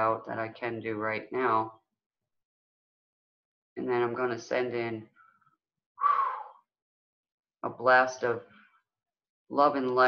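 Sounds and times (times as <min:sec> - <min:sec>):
person sharp breath: 0:05.2 - 0:06.6
person speaking: 0:09.6 - 0:10.0.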